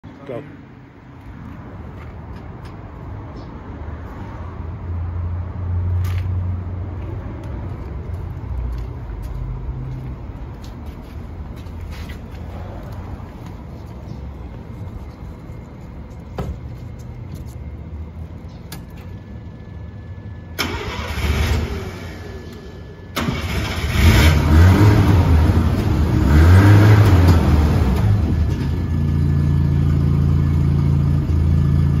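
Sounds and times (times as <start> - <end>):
engine revving: 20.6 - 22.6, 23.2 - 28.8.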